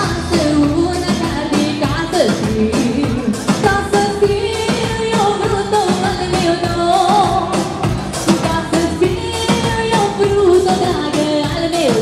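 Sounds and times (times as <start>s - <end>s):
live band playing dance music: 0.0s - 12.0s.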